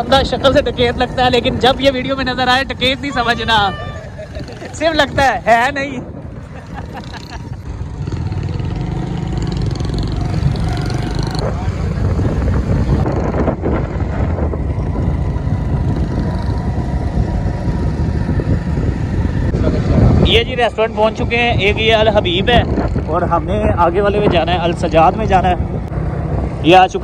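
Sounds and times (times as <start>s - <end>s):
road noise: 0.0s - 27.0s
wind buffeting microphone: 0.0s - 27.0s
motorcycle engine running: 6.2s - 20.0s.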